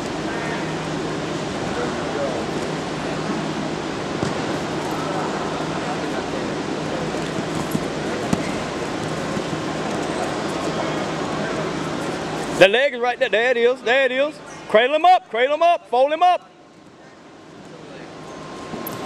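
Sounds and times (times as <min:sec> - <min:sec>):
constant wash of noise: 0:00.0 - 0:19.0.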